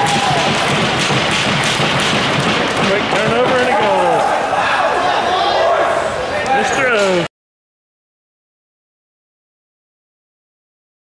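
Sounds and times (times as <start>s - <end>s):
crowd noise in ice rink: 0.0s - 7.3s.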